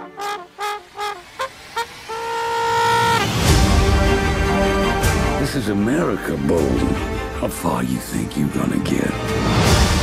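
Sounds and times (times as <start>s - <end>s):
solo brass horn notes: 0.0s - 3.8s
loud trailer music: 0.4s - 10.0s.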